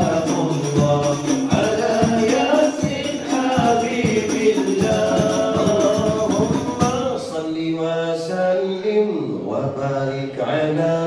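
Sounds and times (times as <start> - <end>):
man chanting into microphone: 0.0 - 11.0.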